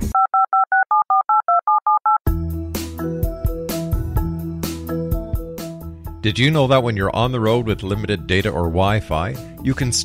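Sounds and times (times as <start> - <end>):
telephone keypad tones: 0.2 - 2.2.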